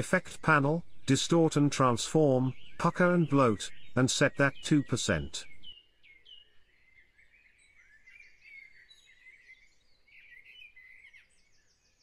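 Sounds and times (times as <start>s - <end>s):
songbirds chirping: 0.0s - 12.0s.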